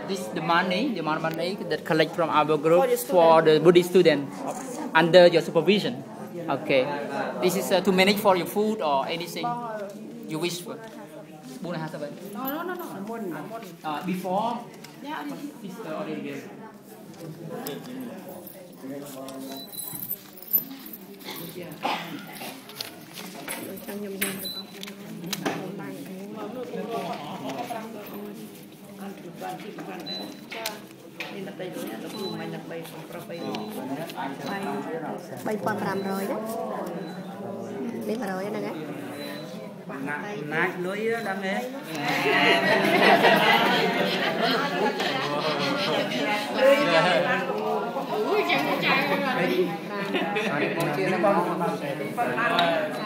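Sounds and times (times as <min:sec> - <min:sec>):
overlapping chatter: 0:00.0 - 0:53.0
indistinct voices talking: 0:40.7 - 0:53.0.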